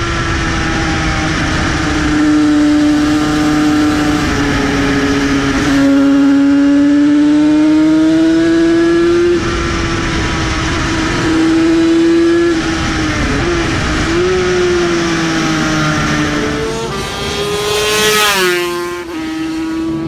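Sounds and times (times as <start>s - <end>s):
motorcycle engine at high revs: 0.0s - 20.0s
motorcycle passing by fast: 0.0s - 20.0s
wind rushing: 8.5s - 19.8s.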